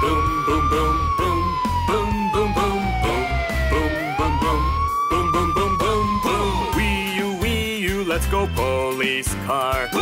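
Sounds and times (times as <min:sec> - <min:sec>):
fire truck siren wailing: 0:00.0 - 0:10.0
upbeat song with steady beat: 0:00.0 - 0:10.0.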